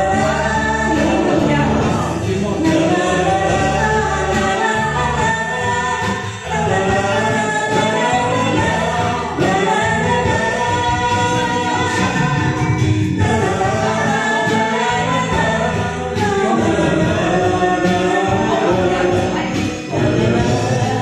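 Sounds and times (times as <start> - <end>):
karaoke backing track: 0.0 - 21.0
man and woman singing duet: 0.0 - 21.0.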